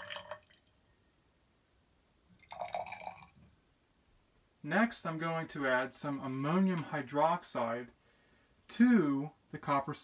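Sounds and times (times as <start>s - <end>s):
liquid pouring into a glass test tube: 0.0s - 0.9s, 2.1s - 3.9s.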